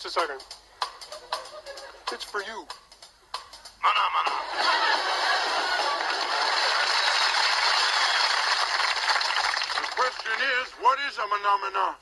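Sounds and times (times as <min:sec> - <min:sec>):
audience applauding: 0:04.2 - 0:10.8.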